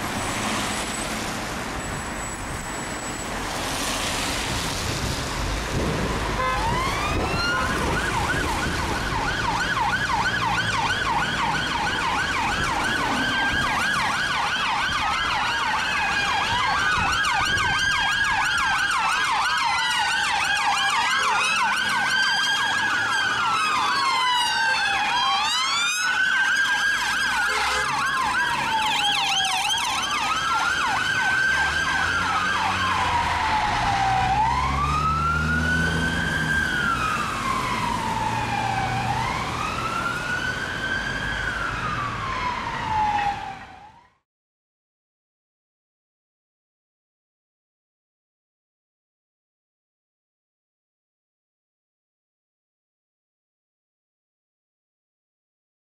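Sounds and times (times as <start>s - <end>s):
passing vehicle engines: 0.0s - 44.0s
police sirens: 0.0s - 44.2s.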